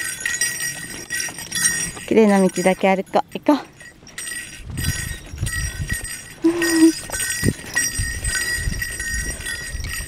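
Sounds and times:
small collar bell jingling: 0.0s - 10.0s.

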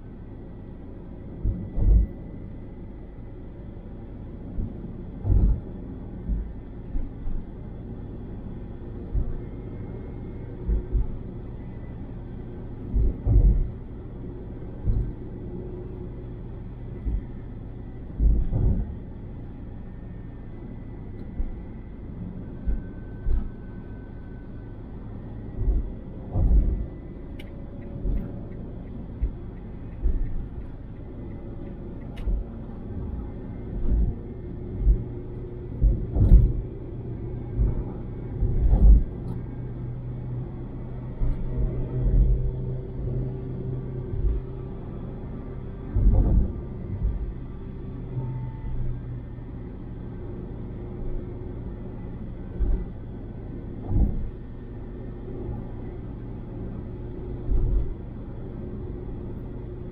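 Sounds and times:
road and engine rumble: 0.0s - 59.9s.

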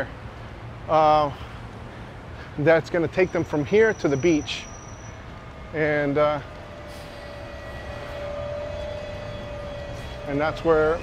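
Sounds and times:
bus engine rumble: 0.0s - 11.0s
steady whine: 2.9s - 11.0s.

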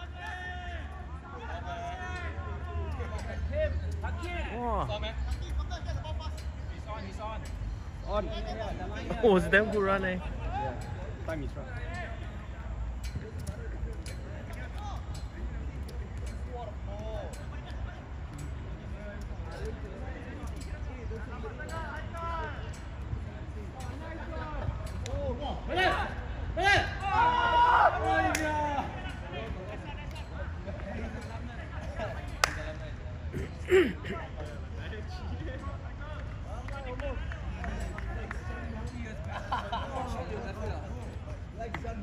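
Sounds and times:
players shouting: 0.0s - 6.5s, 25.0s - 30.0s.

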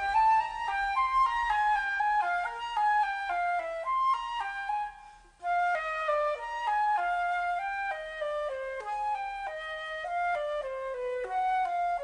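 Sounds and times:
flute-like woodwind melody: 0.0s - 12.0s.

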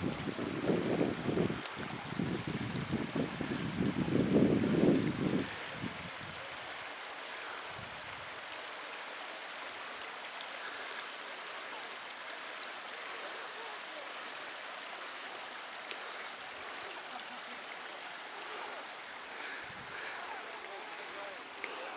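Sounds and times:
wind buffeting microphone: 0.0s - 6.4s
stream running over rocks: 0.0s - 21.9s.

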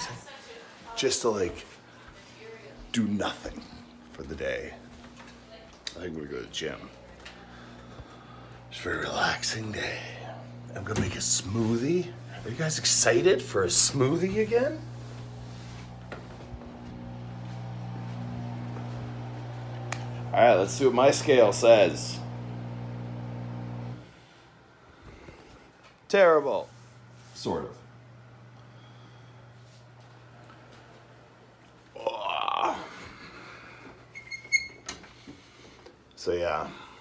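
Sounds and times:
household machine humming: 2.4s - 24.3s, 26.2s - 34.1s.

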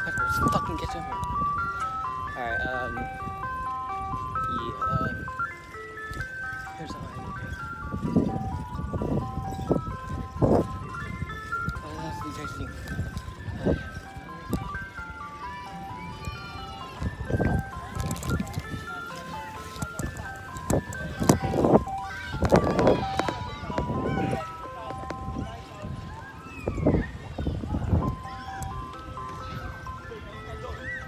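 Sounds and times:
ice cream truck chime tune: 0.0s - 31.0s.

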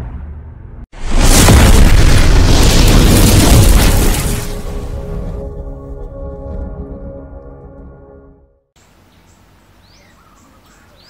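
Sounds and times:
sustained music tones: 4.5s - 8.7s.

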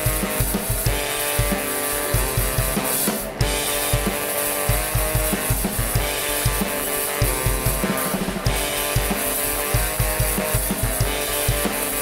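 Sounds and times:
drum kit beat: 0.0s - 12.0s
saxophones playing: 0.0s - 12.0s.

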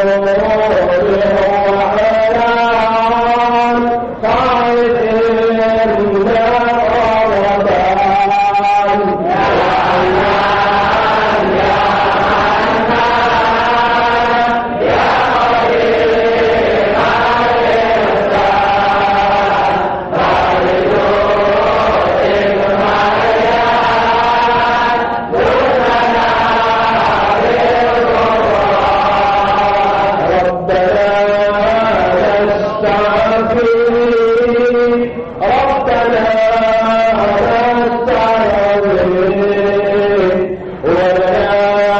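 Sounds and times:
voices chanting: 0.0s - 41.9s.

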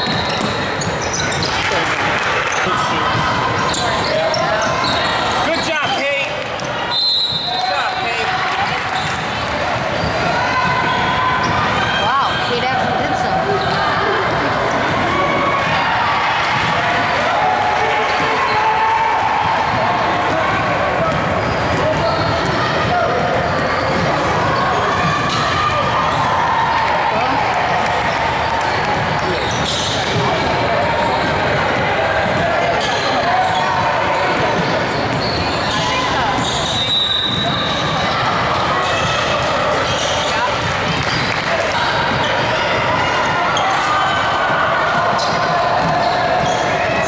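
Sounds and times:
crowd chatter: 0.0s - 47.0s
high whistle: 6.9s - 7.8s, 36.4s - 37.6s.

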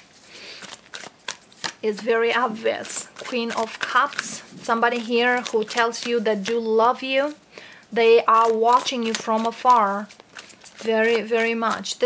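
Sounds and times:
cards rustling: 0.0s - 12.0s.

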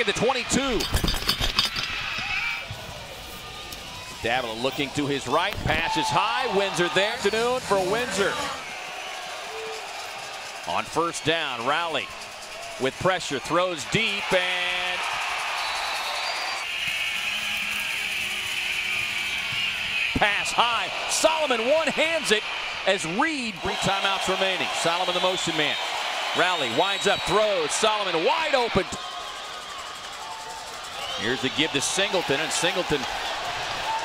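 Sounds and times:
arena crowd noise: 0.0s - 34.0s.

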